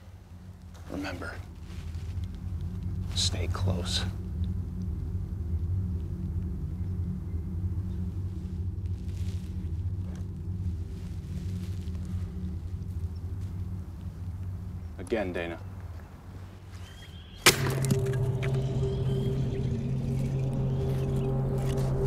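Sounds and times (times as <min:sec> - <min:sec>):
faint rustles: 0:00.0 - 0:17.2
low rumbling drone: 0:00.0 - 0:22.0.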